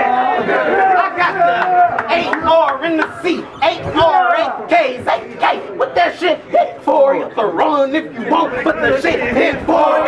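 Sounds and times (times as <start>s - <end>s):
man rapping a cappella: 2.1s - 10.0s.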